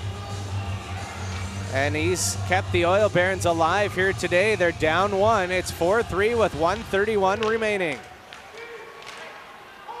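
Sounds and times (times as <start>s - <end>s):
faint crowd noise: 0.0s - 10.0s.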